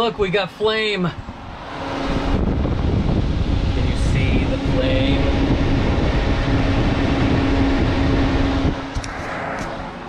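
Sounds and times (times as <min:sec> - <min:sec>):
propane furnace blower and flame rumble: 0:00.0 - 0:10.0.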